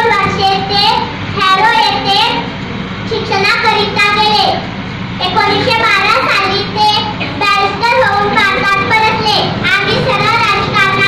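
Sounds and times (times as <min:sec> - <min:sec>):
girl sing-song speaking into microphone: 0:00.0 - 0:02.5, 0:03.1 - 0:11.0.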